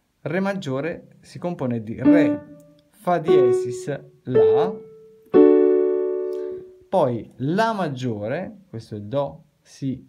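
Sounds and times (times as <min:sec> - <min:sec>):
digital piano chord: 0:02.0 - 0:06.7.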